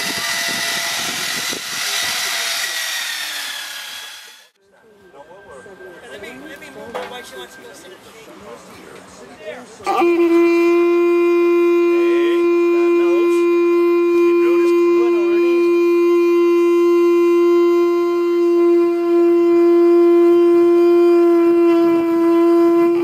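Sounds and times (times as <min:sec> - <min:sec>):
shell horn long note: 0:09.8 - 0:23.0.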